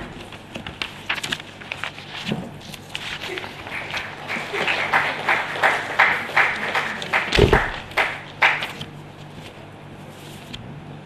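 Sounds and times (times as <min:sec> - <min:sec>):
audience applause: 0:03.2 - 0:08.9.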